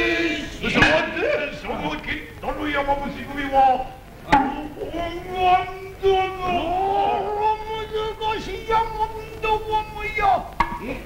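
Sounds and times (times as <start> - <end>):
voices holding long sung notes: 0.0 - 11.0.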